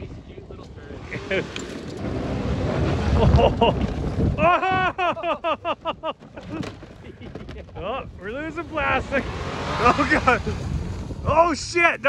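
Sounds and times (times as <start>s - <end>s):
tyres on snow and dirt: 0.0s - 12.0s
suv engine driving hard: 0.1s - 5.2s, 7.6s - 12.0s
wind buffeting microphone: 2.0s - 12.0s.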